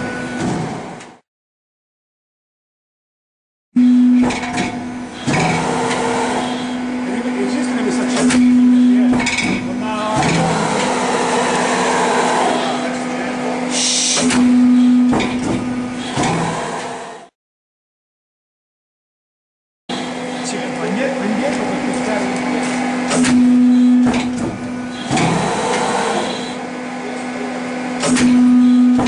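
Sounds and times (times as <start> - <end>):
metal shear humming: 4.2 - 17.2, 19.9 - 27.0
sharp knocks and clanks: 8.0 - 11.0, 15.1 - 16.5, 24.0 - 25.9, 28.0 - 29.0.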